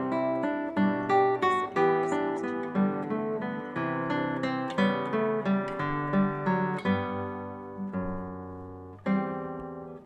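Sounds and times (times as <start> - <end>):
acoustic guitar picking: 0.0 - 10.0.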